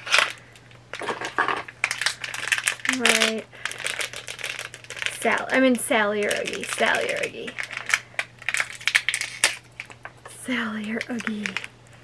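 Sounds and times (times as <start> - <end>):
foil pouch crinkling: 0.0 - 12.0.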